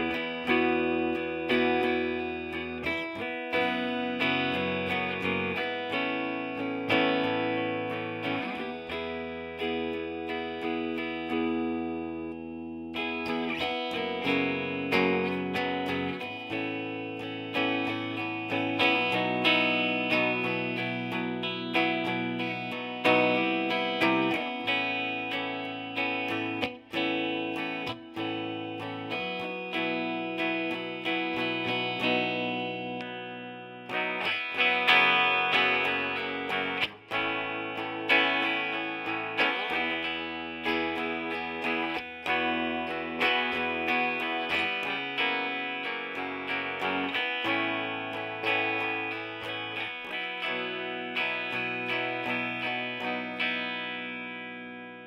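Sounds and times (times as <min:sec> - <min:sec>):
electric guitar chords ringing: 0:00.0 - 0:55.0
single picked guitar notes: 0:00.0 - 0:55.0.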